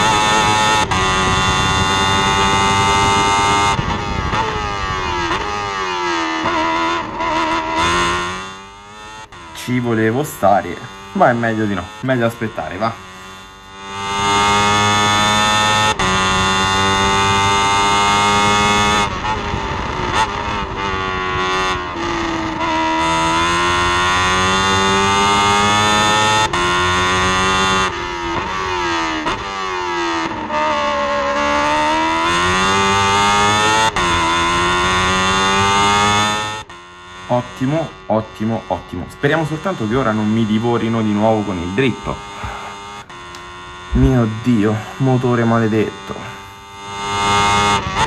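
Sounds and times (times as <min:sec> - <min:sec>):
racing car engine revving: 0:00.0 - 0:48.0.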